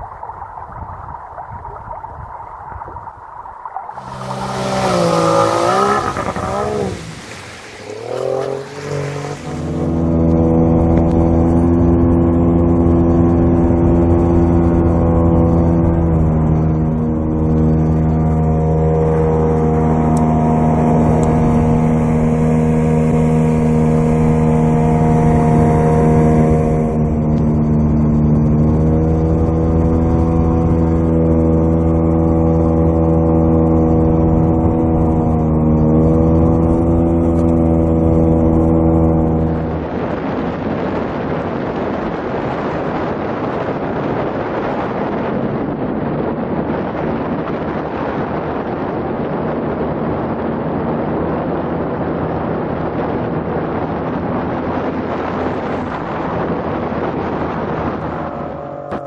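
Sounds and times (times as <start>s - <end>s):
rushing water: 0.0s - 43.9s
boat motor drone: 3.8s - 59.0s.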